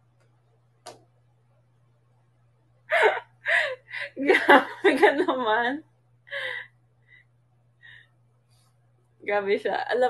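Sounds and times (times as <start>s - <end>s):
woman laughing breathily: 2.9s - 4.8s.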